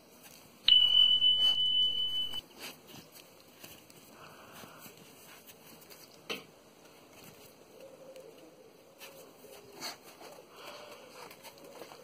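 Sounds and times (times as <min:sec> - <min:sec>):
high-pitched electronic beep: 0:00.7 - 0:02.4.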